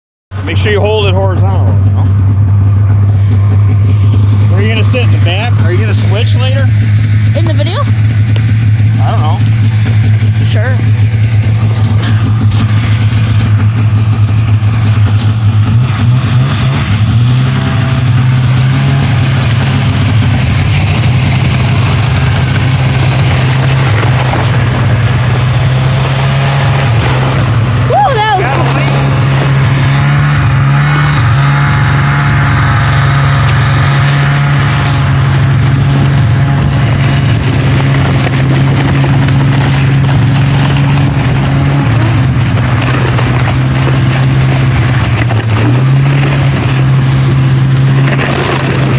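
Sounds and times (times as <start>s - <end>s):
snowmobile engine running: 0.3s - 48.9s.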